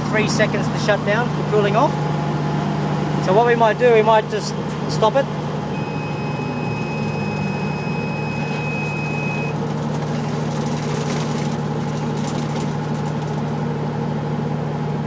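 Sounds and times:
diesel generator drone: 0:00.0 - 0:15.0
high alarm beep: 0:05.7 - 0:09.6.

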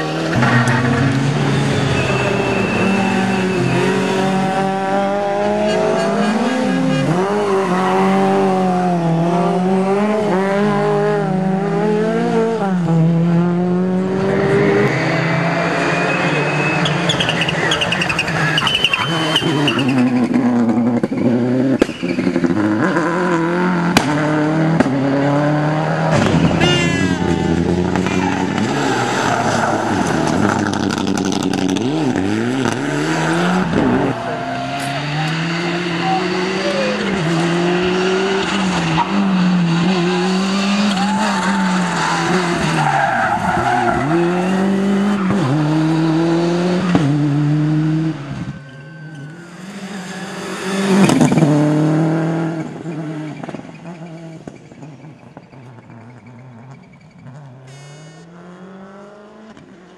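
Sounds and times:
tyres squealing and skidding: 0:00.0 - 0:09.0, 0:14.0 - 0:24.0, 0:25.1 - 0:58.2
rally car engines revving: 0:00.0 - 0:59.9.

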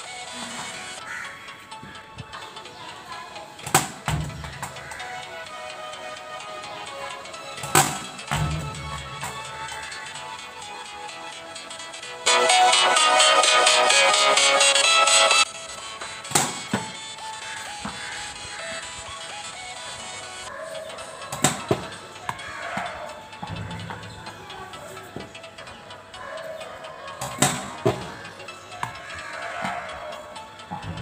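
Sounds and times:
background music: 0:00.0 - 0:31.0
cricket bat striking ball: 0:03.7 - 0:04.6, 0:07.7 - 0:08.7, 0:16.3 - 0:17.0.

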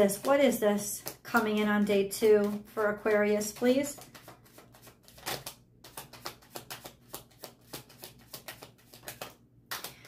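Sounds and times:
cards being shuffled: 0:00.0 - 0:01.6, 0:02.2 - 0:10.0.

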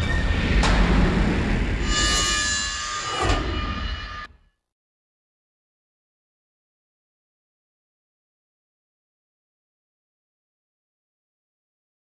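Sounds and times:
dramatic impact hits: 0:00.0 - 0:04.4.

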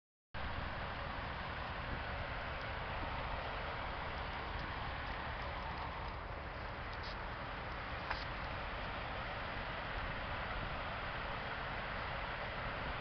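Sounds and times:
steady rushing noise with rumble: 0:00.4 - 0:13.0.

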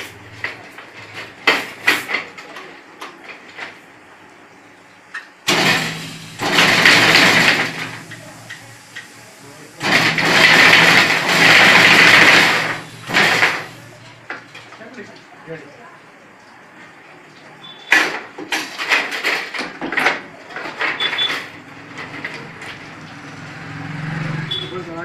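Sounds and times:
fence making machine rushing: 0:05.5 - 0:08.7, 0:09.8 - 0:14.0.

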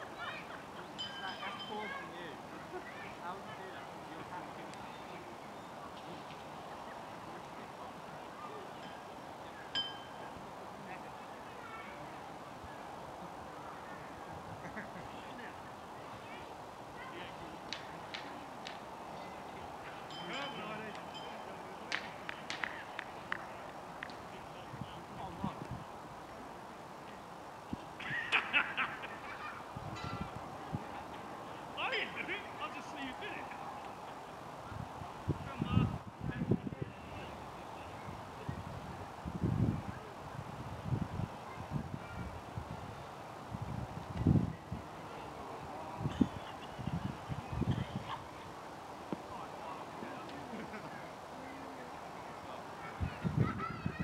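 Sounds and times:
outdoor ambience: 0:00.0 - 0:54.0.

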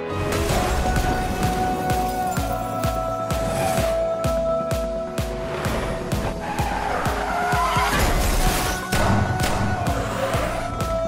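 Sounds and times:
car tyres squealing: 0:05.7 - 0:09.0.

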